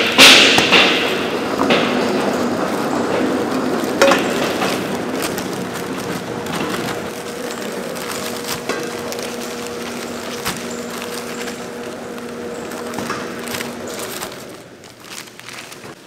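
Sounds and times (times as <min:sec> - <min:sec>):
plastic bags rustling and crinkling: 0:00.0 - 0:16.0
steady machine hum: 0:00.0 - 0:16.0.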